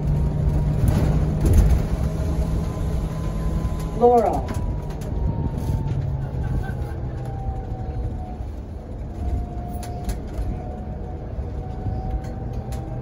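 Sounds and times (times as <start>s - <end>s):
low rumble of bus ride: 0.0s - 13.0s.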